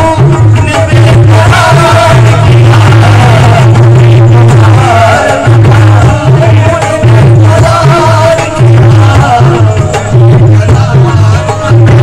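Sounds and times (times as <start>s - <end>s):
hand drum beats: 0.0s - 12.0s
harmonium notes: 0.0s - 12.0s.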